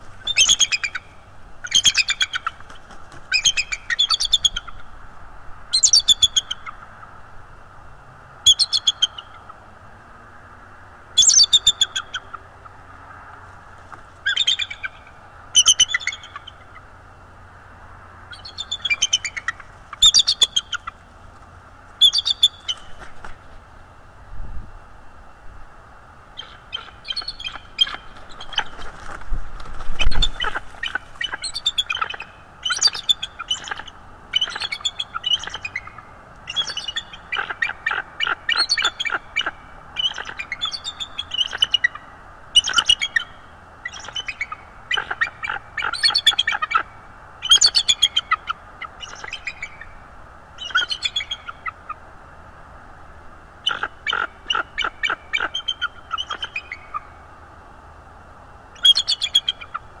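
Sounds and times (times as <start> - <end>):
eagles chittering calls: 0.0 - 4.9, 14.2 - 16.9, 18.3 - 21.0, 22.0 - 23.0, 26.3 - 28.8, 30.0 - 50.0, 50.6 - 52.0, 53.6 - 57.2, 58.8 - 59.9
rush of wingbeats: 2.4 - 3.4, 27.8 - 31.4.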